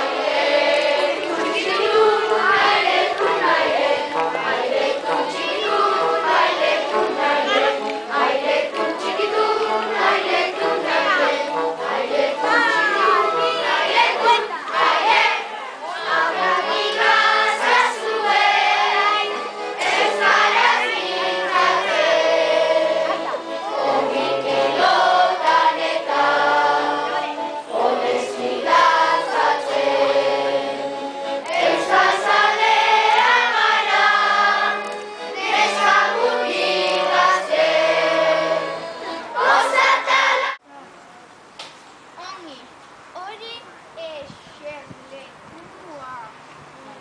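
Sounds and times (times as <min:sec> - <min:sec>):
children's chorus singing: 0:00.0 - 0:40.6.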